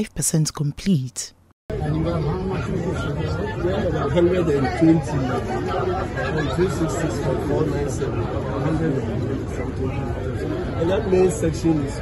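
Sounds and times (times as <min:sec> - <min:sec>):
overlapping chatter: 0:01.7 - 0:12.0.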